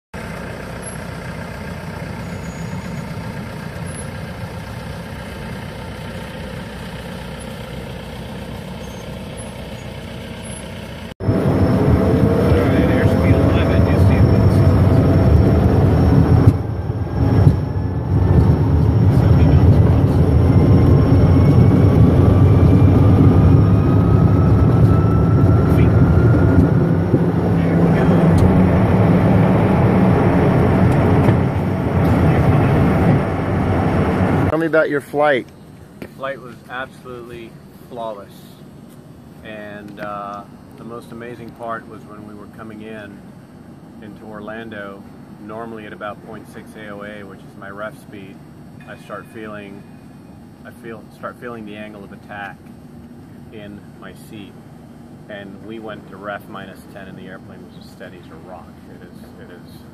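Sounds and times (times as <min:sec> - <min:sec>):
jet engines on takeoff roll: 0:00.2 - 0:34.8, 0:35.4 - 0:59.9
aircraft tug engine: 0:00.2 - 0:59.9.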